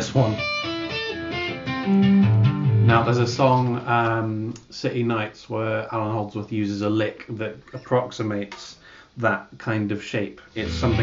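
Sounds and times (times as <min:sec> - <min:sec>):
electric guitar legato notes: 0:00.0 - 0:03.1, 0:10.6 - 0:11.0.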